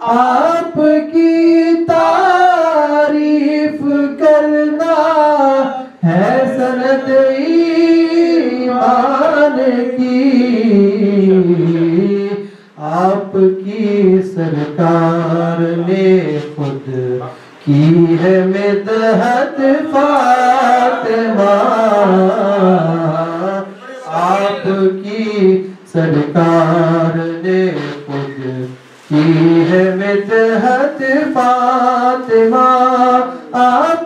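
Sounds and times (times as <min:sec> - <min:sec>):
man singing without instruments: 0:00.0 - 0:34.0
short breath: 0:12.4 - 0:12.8, 0:17.3 - 0:17.6.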